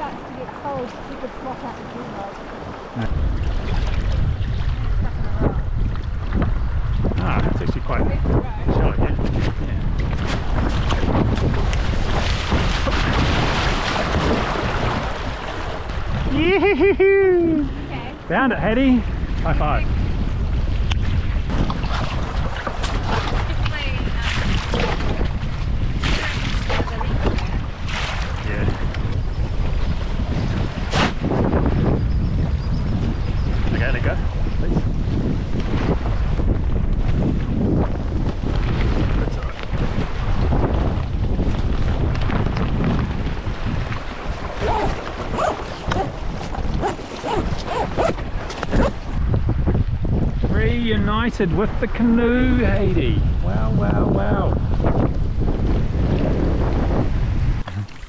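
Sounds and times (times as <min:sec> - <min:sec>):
shallow river rippling: 0:00.0 - 0:07.1, 0:09.6 - 0:31.8, 0:33.2 - 0:49.2
knocks and splashes: 0:00.0 - 0:07.5, 0:09.0 - 0:16.3, 0:20.7 - 0:31.8, 0:35.5 - 0:49.2
wind buffeting microphone: 0:00.0 - 0:58.0.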